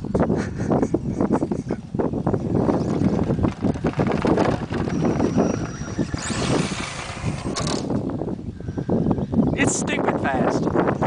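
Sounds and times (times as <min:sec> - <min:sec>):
thin whine: 0:02.7 - 0:08.2.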